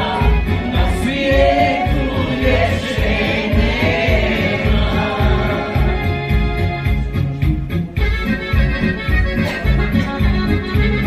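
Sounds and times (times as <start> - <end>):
voices singing together: 0.0 - 6.6
backing music with low beat: 0.0 - 11.0.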